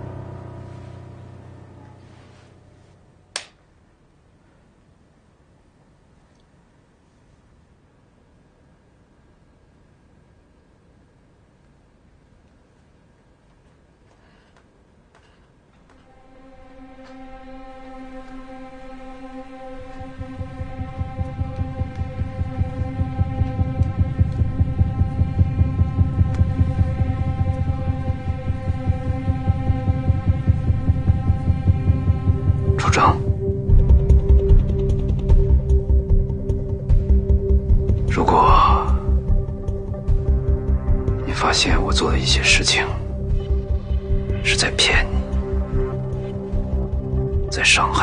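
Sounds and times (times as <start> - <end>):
low pulsing throb: 0.0 - 3.0, 16.0 - 48.0
held droning chord: 0.0 - 3.2, 15.9 - 48.0.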